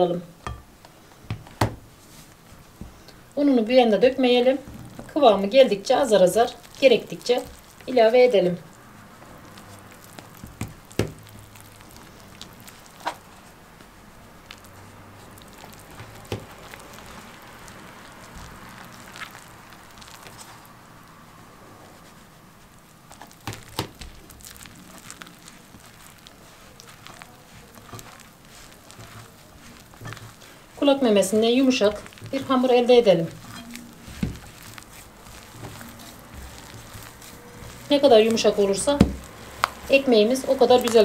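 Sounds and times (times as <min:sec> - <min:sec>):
hands kneading dough: 0:00.0 - 0:41.0.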